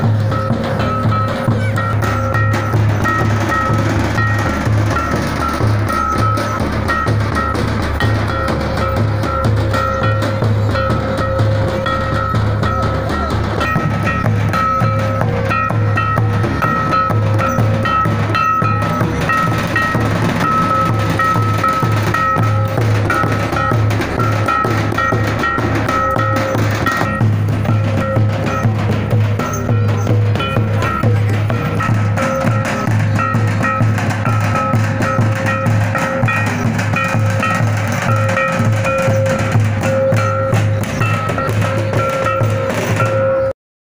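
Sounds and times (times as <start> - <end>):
hand drums and bass drum beating: 0.0 - 43.5
high melody: 0.0 - 43.5.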